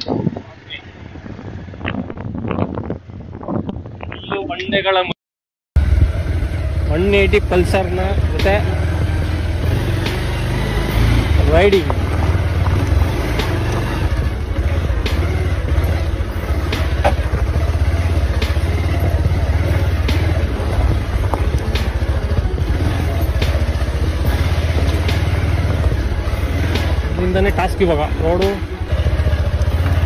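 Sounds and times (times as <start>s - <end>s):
motorcycle engine running: 5.8s - 30.0s.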